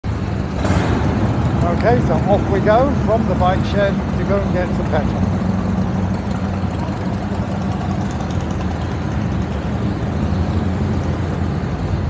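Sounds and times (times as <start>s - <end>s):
motorcycle engine idling: 0.8s - 12.0s.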